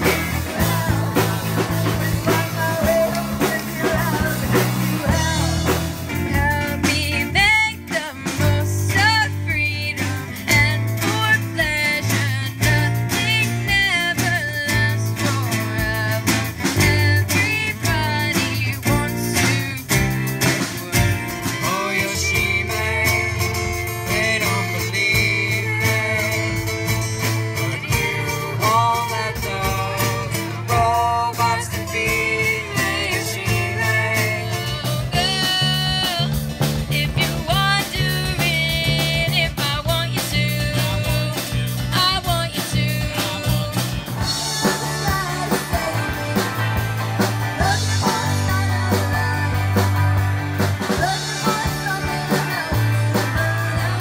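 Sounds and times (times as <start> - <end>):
woman singing: 0.0 - 27.1, 27.7 - 54.0
live rock band playing: 0.0 - 54.0
person singing: 0.0 - 54.0.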